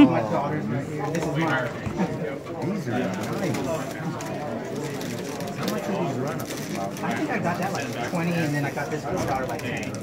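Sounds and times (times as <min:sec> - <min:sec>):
people chattering: 0:00.0 - 0:10.0.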